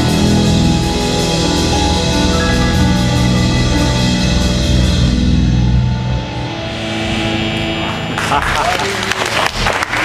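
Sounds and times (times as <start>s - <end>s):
live blues band playing: 0.0s - 8.3s
chord ringing: 0.0s - 9.2s.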